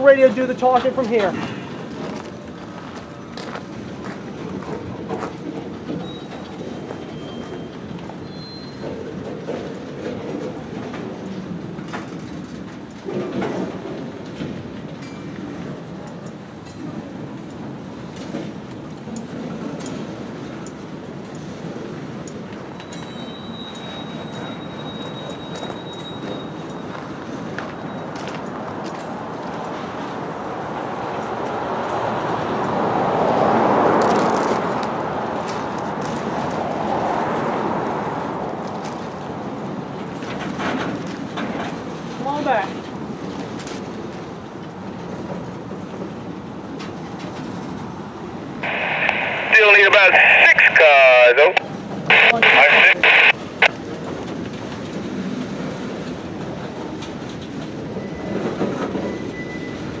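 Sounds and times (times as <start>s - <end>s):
train wheels rumbling on rail: 0.0s - 48.4s, 53.8s - 60.0s
tinny radio voice: 48.6s - 53.4s.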